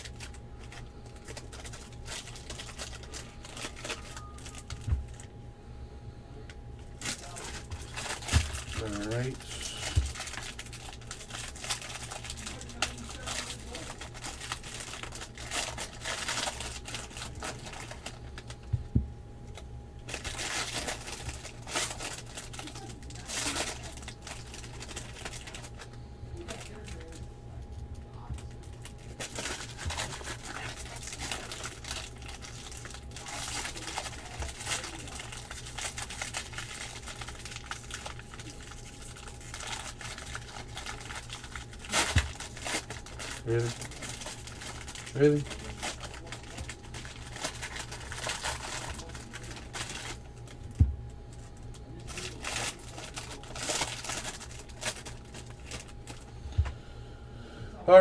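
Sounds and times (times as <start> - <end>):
foil wrappers crinkling: 0.0 - 5.3, 6.8 - 56.3
wrapper tearing: 0.0 - 5.3, 7.0 - 18.6, 19.5 - 25.9, 26.5 - 27.2, 28.4 - 50.7, 51.4 - 56.2
steady low hum: 0.0 - 58.0.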